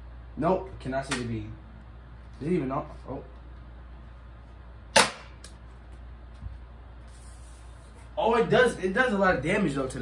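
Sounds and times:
bb gun crack: 0:04.9 - 0:05.6.

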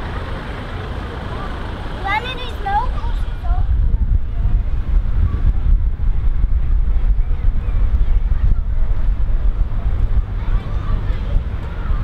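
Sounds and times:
low rumble of vehicle engines: 0:00.0 - 0:12.0
faint voices: 0:00.8 - 0:12.0.

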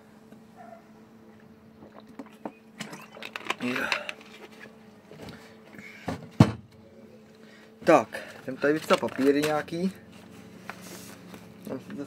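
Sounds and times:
faint steady hum: 0:00.0 - 0:12.0
handling noises: 0:02.1 - 0:06.8, 0:07.7 - 0:12.0.

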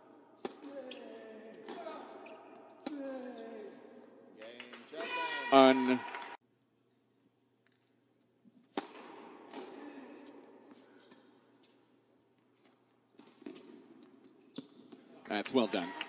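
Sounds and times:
tennis ball struck by rackets: 0:08.7 - 0:10.4.

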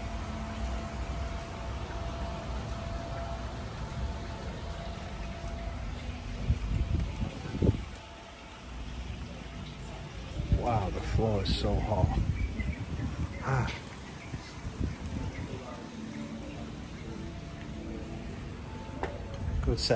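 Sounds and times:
wind rumble on microphone: 0:05.4 - 0:08.2, 0:10.3 - 0:15.8.

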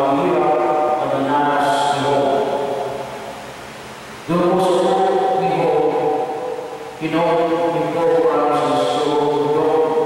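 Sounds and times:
man chanting into microphone: 0:07.0 - 0:10.0.

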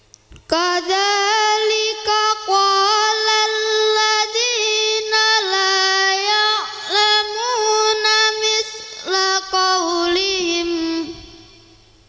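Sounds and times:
boy chanting recitation: 0:00.4 - 0:11.8.

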